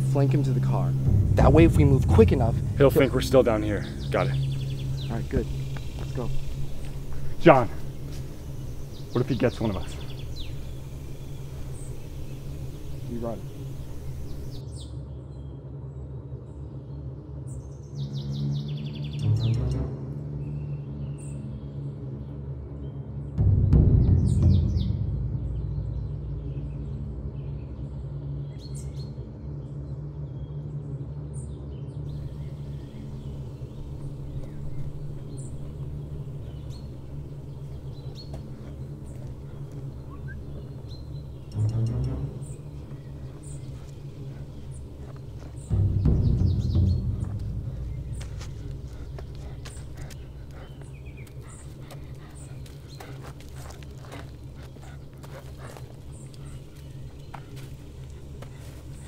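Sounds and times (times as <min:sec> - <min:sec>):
sudden low hits: 0:00.0 - 0:14.6, 0:32.1 - 0:50.8
birds chirping: 0:00.0 - 0:15.9, 0:24.0 - 0:59.0
low suspense film score drone: 0:00.0 - 0:59.0.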